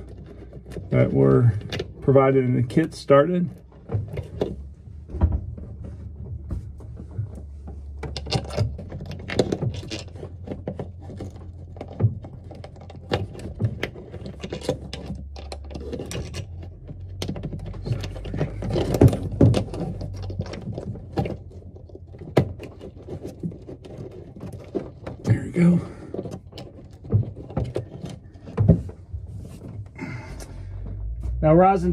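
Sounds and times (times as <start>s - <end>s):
small clicks and knocks: 0.0s - 25.4s, 26.0s - 31.2s
low steady hum: 0.0s - 31.9s.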